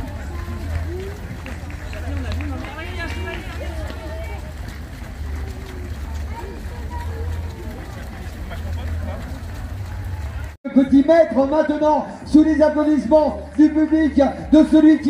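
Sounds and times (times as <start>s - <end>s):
indistinct chatter: 0.0s - 10.6s
running footsteps: 0.0s - 15.0s.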